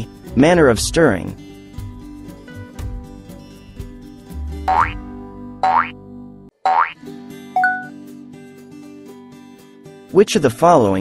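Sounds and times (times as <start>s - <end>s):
light background music: 0.0s - 11.0s
cartoon boing sound effects: 4.7s - 6.0s, 6.7s - 7.0s.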